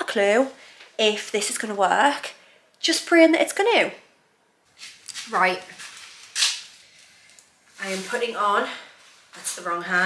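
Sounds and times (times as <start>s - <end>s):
rubber gloves swishing: 7.7s - 9.4s
rubbery rustling: 7.7s - 9.7s.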